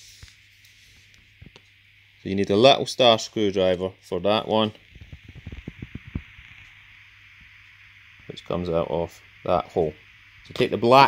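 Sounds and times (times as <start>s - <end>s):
room hiss and hum: 0.0s - 11.0s.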